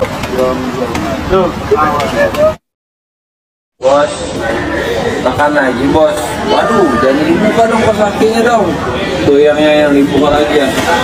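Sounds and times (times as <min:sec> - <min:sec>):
city street traffic rumble: 0:00.0 - 0:02.6
unclear voices talking: 0:00.0 - 0:02.6, 0:03.8 - 0:11.0.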